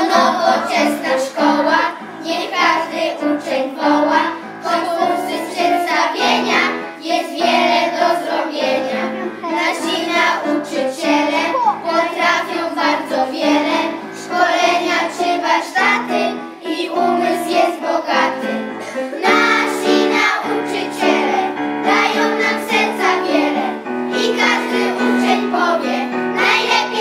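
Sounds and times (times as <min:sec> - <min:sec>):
children singing in unison: 0:00.0 - 0:27.0.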